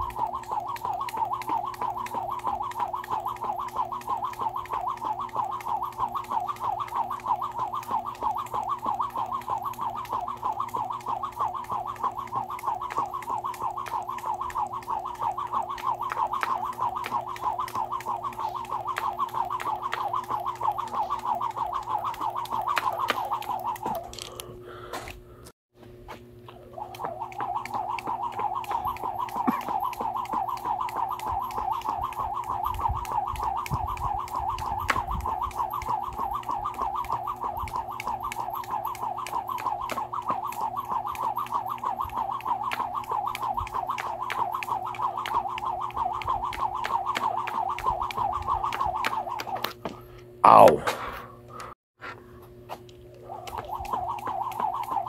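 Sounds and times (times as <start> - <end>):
rope clicking on ground: 0.0 - 25.2, 26.1 - 50.8, 52.4 - 55.0
skipping rope whirring: 0.0 - 25.2, 25.8 - 51.8, 52.4 - 55.0.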